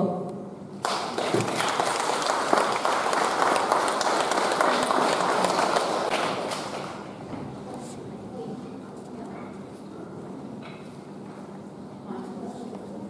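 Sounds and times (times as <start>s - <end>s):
audience applause: 0.8s - 7.2s.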